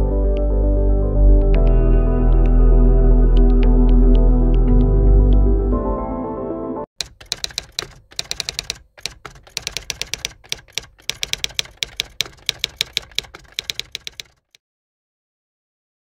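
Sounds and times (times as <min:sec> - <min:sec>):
typewriter key clicks: 0:07.0 - 0:14.6.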